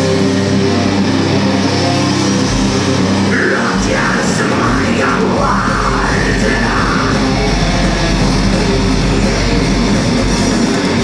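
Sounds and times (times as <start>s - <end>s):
distorted electric guitars: 0.0s - 11.0s
heavy metal band playing: 0.0s - 11.0s.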